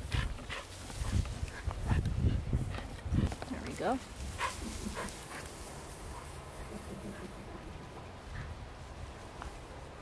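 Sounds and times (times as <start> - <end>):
dog moving in long grass: 0.0 - 10.0.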